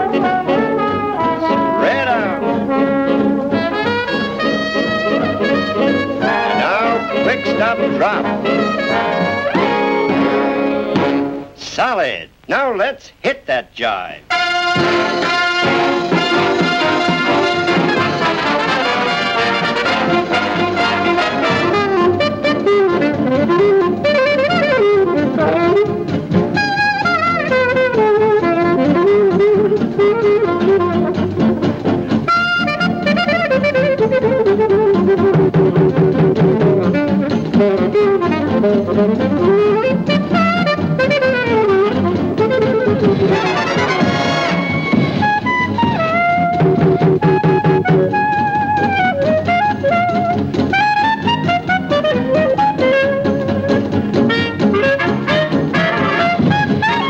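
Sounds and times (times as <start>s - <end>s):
swing big band music: 0.0s - 57.0s.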